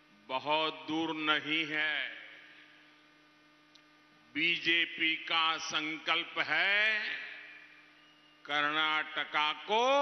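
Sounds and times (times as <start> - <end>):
low electrical hum: 0.0 - 10.0
speech reverberating over loudspeaker: 0.3 - 2.8, 4.3 - 7.8, 8.4 - 10.0.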